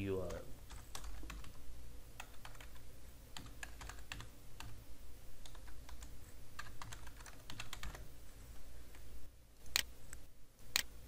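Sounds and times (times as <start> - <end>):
steady low hum: 0.0 - 11.0
computer keyboard typing: 0.2 - 1.6, 2.2 - 4.8, 5.4 - 8.1.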